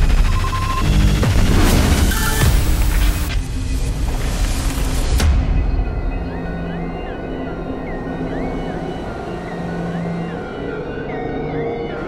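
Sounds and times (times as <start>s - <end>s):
synth music: 0.0s - 12.0s.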